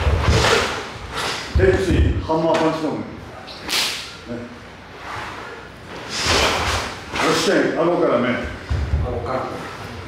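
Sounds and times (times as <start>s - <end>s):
sharp swish: 3.5s - 4.2s.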